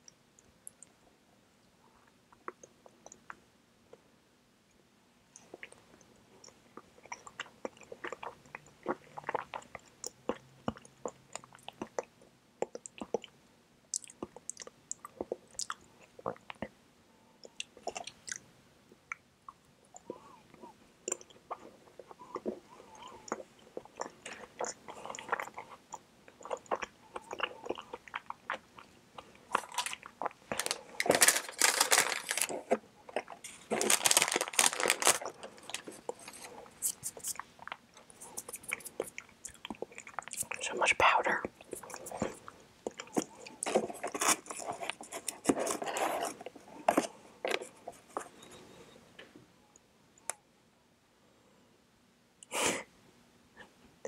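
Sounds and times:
close-miked chewing: 5.3 - 16.8, 17.4 - 18.5, 19.1 - 48.5.

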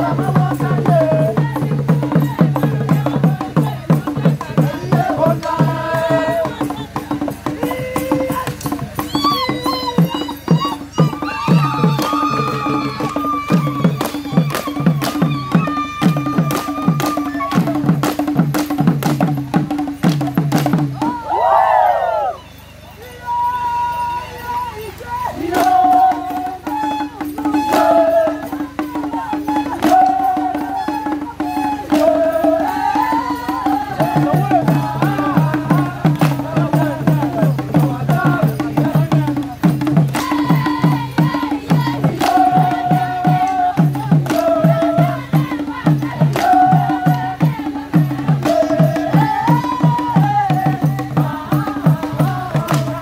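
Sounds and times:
drums beating fast rhythm: 0.0 - 21.5, 24.4 - 53.0
voices chanting and singing: 0.0 - 53.0.

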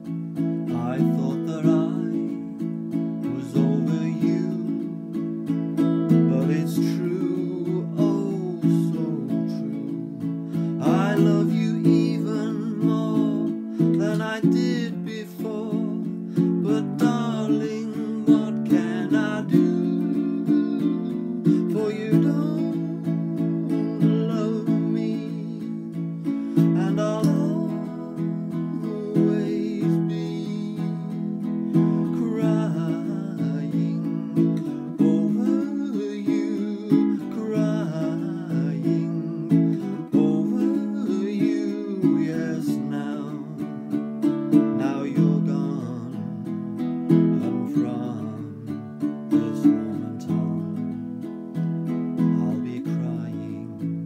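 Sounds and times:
man singing: 0.0 - 54.0
ukulele strumming chords: 0.0 - 54.0.

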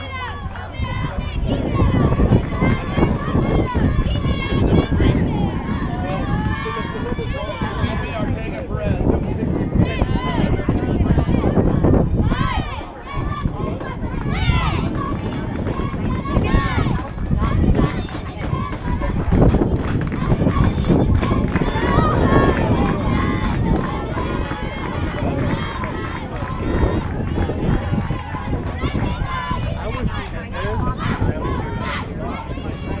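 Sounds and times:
heavy low rumble: 0.0 - 33.0
people talking indistinctly: 0.0 - 33.0.

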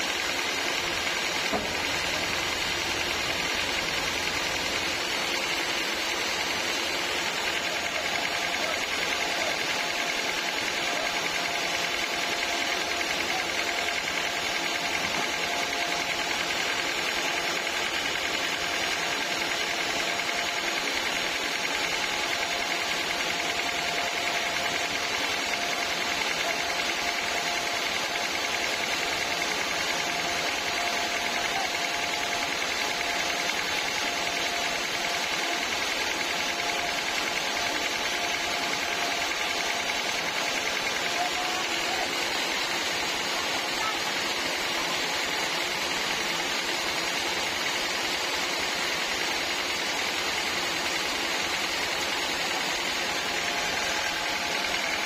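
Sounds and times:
sawmill motor and blade running: 0.0 - 55.0.

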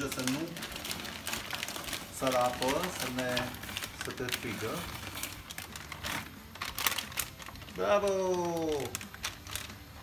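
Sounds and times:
plastic bag crinkling: 0.0 - 10.0.

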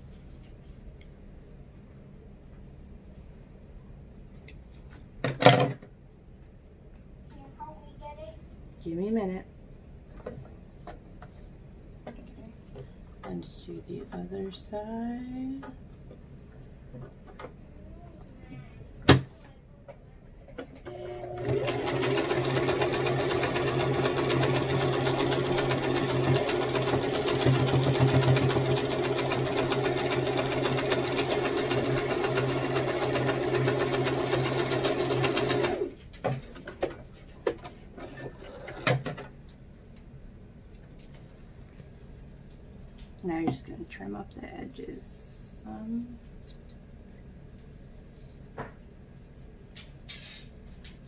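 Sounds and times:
sewing machine stitching: 20.8 - 36.0.

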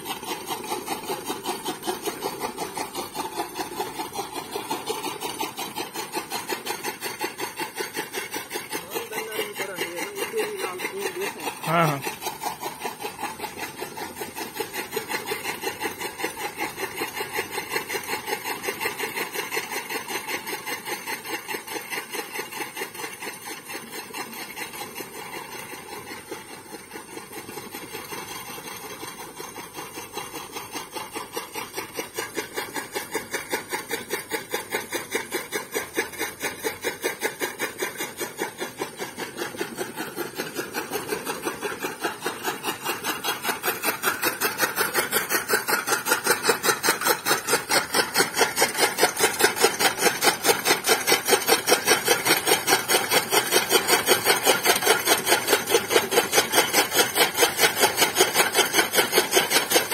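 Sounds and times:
chaff cutter clacking: 0.0 - 59.9.

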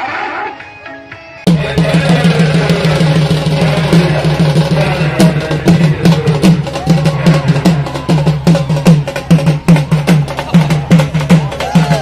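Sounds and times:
drums beaten fast: 1.5 - 12.0.

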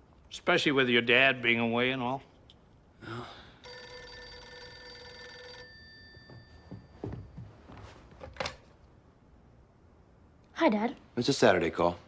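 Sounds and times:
telephone bell ringing: 3.6 - 7.6.

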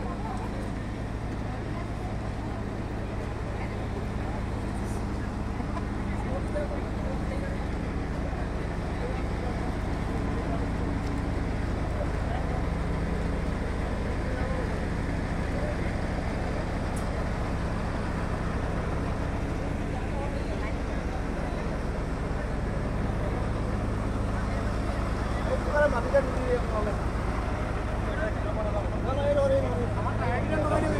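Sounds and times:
heavy vehicle engine droning: 0.0 - 30.9
people's voices: 0.0 - 30.9.

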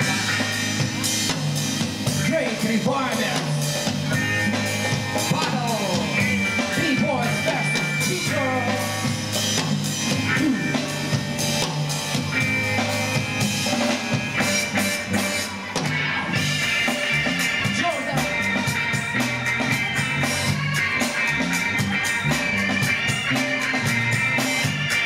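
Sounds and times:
drum kit and bass groove: 0.0 - 25.0.

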